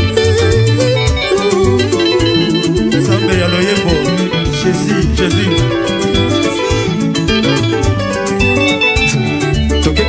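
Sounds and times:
drum kit beat: 0.0 - 10.0
interlocking electric guitar lines: 0.0 - 10.0.

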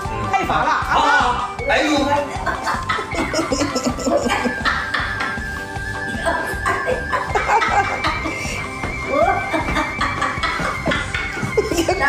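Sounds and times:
music with held high notes: 0.0 - 12.0
woman laughing: 2.4 - 12.0.

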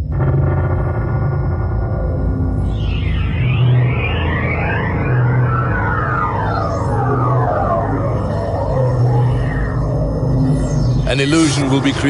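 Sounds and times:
low synthesizer drone: 0.0 - 12.0
sweeping synth tones: 0.0 - 12.0.

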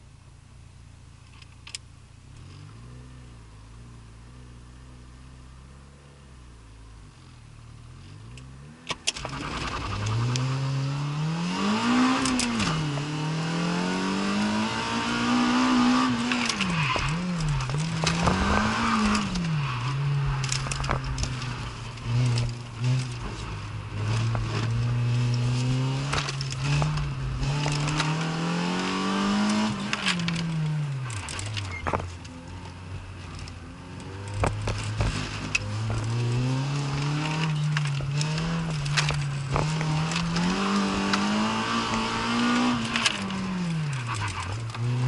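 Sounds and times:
car engine revving: 2.2 - 45.0.

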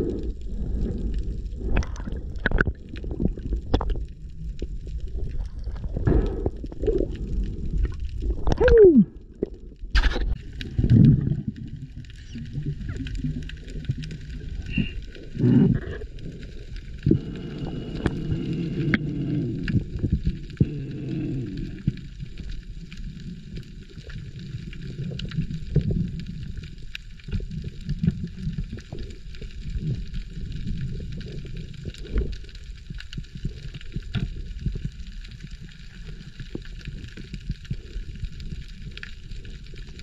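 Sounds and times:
muffled underwater water rumble: 0.0 - 40.0
sharp underwater clicks and crackles: 0.0 - 40.0.

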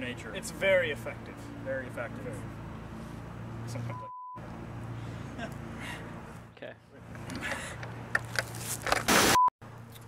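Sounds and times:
faint outdoor rustle: 2.2 - 3.9, 4.8 - 9.1.

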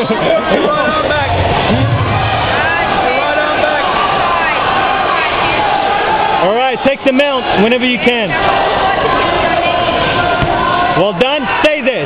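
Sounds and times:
crowd talking and shouting: 0.0 - 12.0
low rumble: 1.3 - 3.0.

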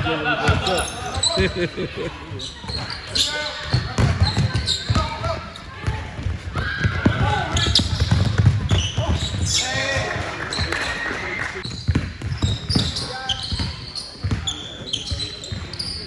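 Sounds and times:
players' voices: 0.0 - 16.0
basketball bouncing on hardwood floor: 5.8 - 9.4, 11.7 - 14.4.

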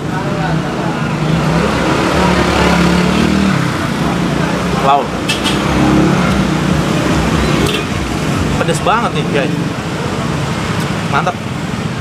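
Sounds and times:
people talking: 0.0 - 2.9, 3.8 - 5.2, 8.6 - 9.7
street background noise: 0.0 - 12.0
car engine passing by: 0.5 - 11.0.

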